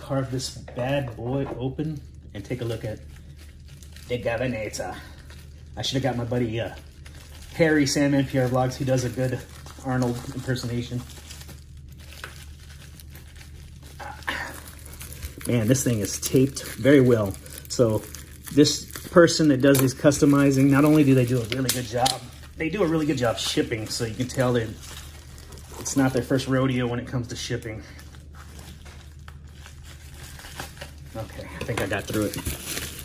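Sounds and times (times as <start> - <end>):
package rustling: 0.0 - 33.0
steady low hum: 0.0 - 33.0.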